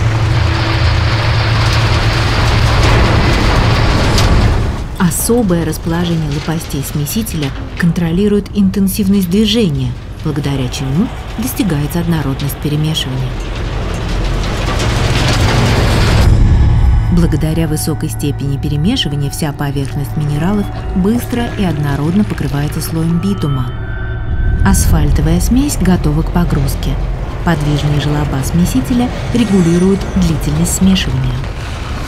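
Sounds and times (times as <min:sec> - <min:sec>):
low machine drone: 0:00.0 - 0:32.0
stone aggregate tumbling: 0:00.0 - 0:32.0
background music: 0:04.8 - 0:32.0.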